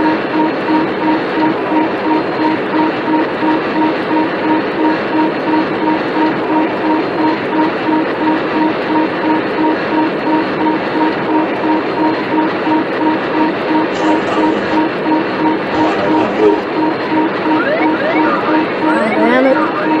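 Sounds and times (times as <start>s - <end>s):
steady cockpit noise: 0.0s - 20.0s
warning alarm beeping rapidly: 0.1s - 20.0s.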